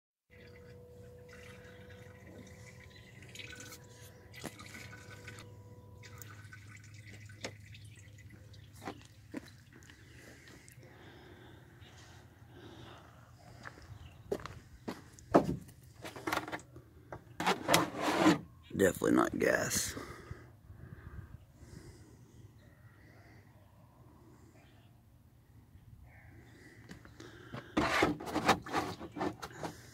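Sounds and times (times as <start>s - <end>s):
liquid dripping into plastic jug: 0.3s - 10.8s
knocks and handling noises: 15.3s - 18.4s.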